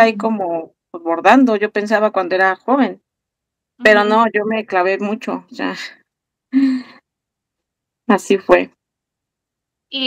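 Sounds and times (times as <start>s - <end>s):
woman sighing: 6.6s - 6.9s.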